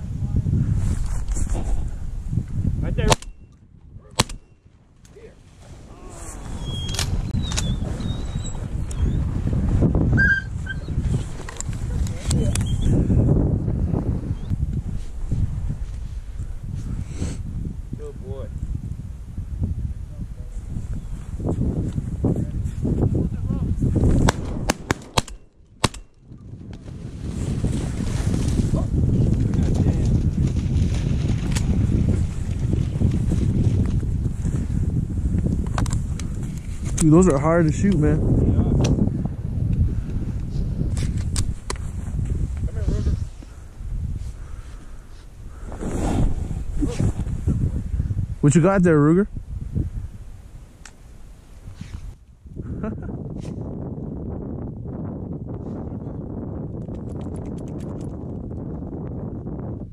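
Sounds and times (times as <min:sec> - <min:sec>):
microphone handling rumble: 0:00.0 - 0:59.9
wind on microphone: 0:00.0 - 0:59.9
shotgun shots: 0:04.2 - 0:04.6, 0:24.2 - 0:26.2.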